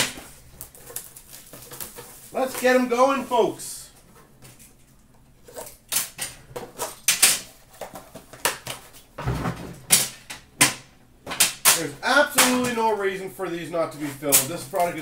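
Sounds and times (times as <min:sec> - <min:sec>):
plastic wrap crinkling: 0:00.0 - 0:04.0.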